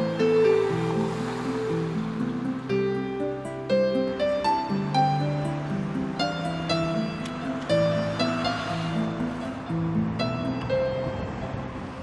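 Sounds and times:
soft hissing wash: 0.0 - 11.0
gentle instrumental music: 0.0 - 12.0.

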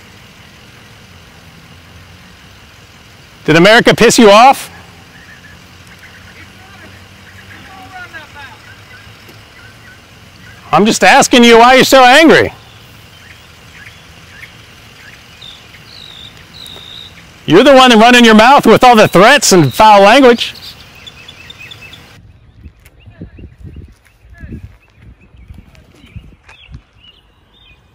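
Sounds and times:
small bird chirping: 5.0 - 10.8, 12.5 - 17.5, 18.8 - 27.9.

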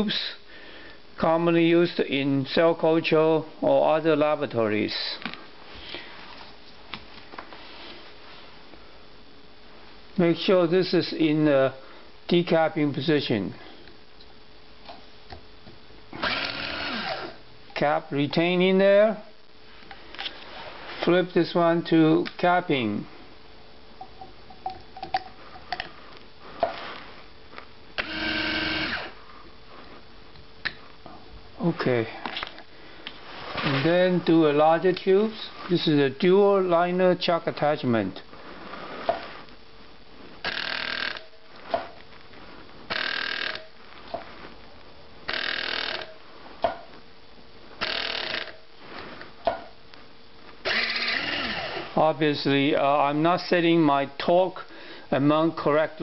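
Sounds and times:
small electric motor spinning: 16.2 - 17.4, 28.0 - 29.1, 40.5 - 41.3, 42.9 - 43.6, 45.3 - 46.1, 47.8 - 48.6, 50.6 - 51.8.

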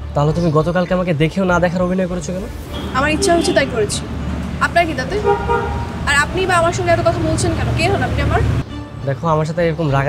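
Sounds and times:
road traffic rumble: 1.3 - 9.0
voices: 2.1 - 8.6
vehicle horn: 2.6 - 6.9.

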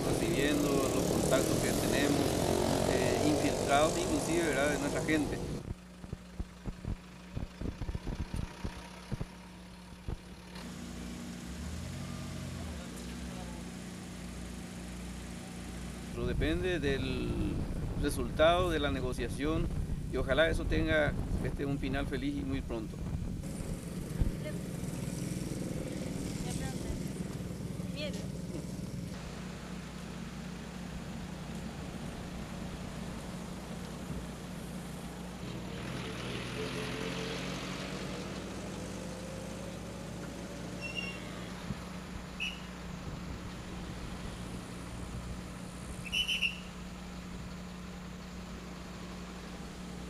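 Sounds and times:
engine revving: 0.0 - 5.7, 10.0 - 17.7, 23.0 - 30.4, 31.0 - 42.1
vehicles passing: 0.0 - 50.0
short high-pitched chirps: 46.0 - 46.7.

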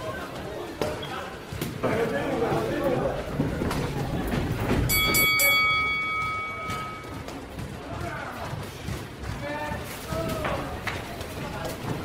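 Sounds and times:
boxing ring bell ringing: 4.9 - 7.3.

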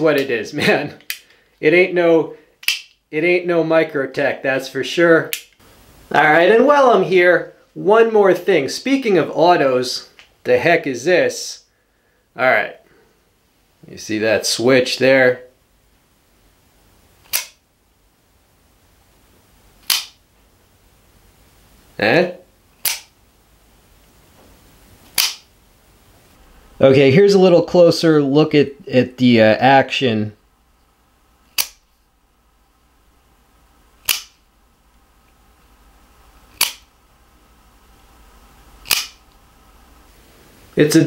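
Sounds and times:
knife blade spring snaps: 17.2 - 17.6, 19.8 - 20.2, 22.8 - 23.1, 25.2 - 25.5, 31.6 - 31.8, 34.0 - 34.4, 36.6 - 36.9, 38.8 - 39.2
automatic knife blade clacking: 36.6 - 36.9, 38.8 - 39.2.

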